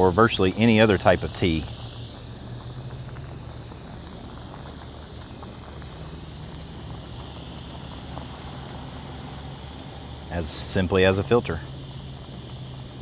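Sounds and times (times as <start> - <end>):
stove burner rumble: 0.0 - 13.0
water boiling and bubbling: 0.0 - 13.0.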